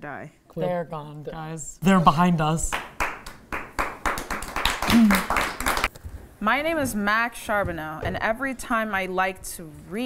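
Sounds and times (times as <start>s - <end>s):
small group clapping: 2.6s - 5.9s.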